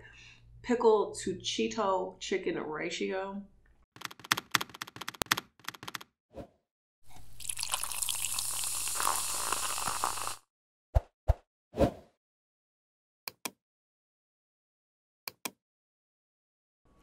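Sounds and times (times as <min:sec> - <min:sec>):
quick typing-like clicks: 0:04.0 - 0:06.1.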